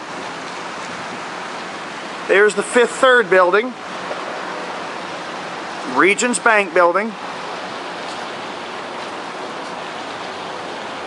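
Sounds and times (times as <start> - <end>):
steady rushing background noise: 0.9 - 11.0.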